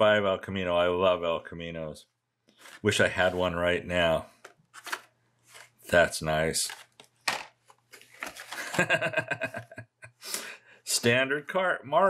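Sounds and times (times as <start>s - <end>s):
plastic packaging rustling: 4.7s - 5.8s, 6.6s - 8.9s
man chuckling: 8.6s - 10.4s.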